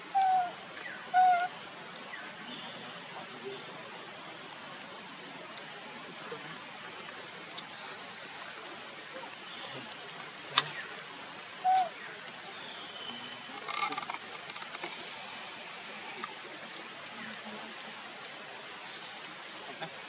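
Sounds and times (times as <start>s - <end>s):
animal calls: 0.0s - 1.6s, 11.6s - 12.0s.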